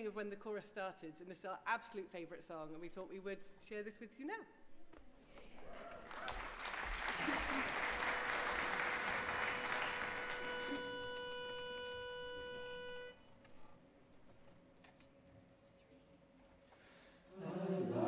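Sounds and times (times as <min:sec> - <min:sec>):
audience applause: 0:05.6 - 0:11.2
pitch pipe note: 0:08.0 - 0:13.4.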